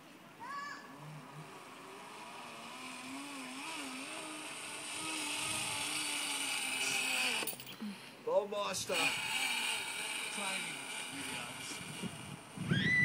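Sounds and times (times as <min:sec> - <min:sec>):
trolley wheels whirring on cable: 0:00.4 - 0:07.7, 0:08.7 - 0:13.0.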